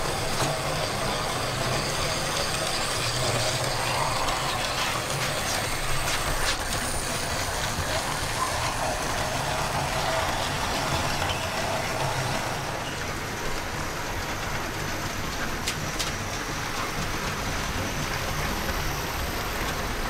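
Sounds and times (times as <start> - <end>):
model train rolling rumble: 0.0 - 20.0.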